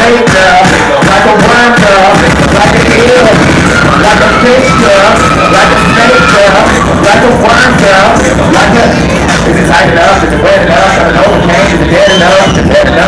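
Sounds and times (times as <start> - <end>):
loud hip hop music through club speakers: 0.0 - 13.0.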